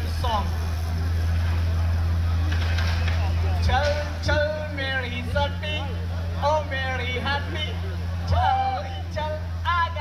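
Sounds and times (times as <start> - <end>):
man speaking over loudspeaker: 0.0 - 0.6, 3.5 - 10.0
steady low rumble: 0.0 - 10.0.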